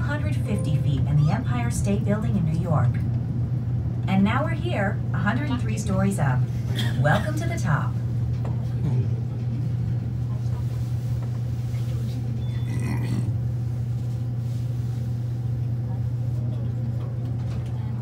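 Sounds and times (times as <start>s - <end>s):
elevator cab hum: 0.0s - 18.0s
faint voices: 8.6s - 13.5s.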